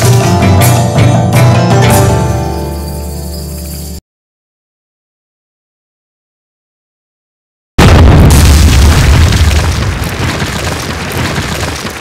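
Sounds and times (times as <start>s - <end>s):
deep boom hit: 7.8s - 10.0s.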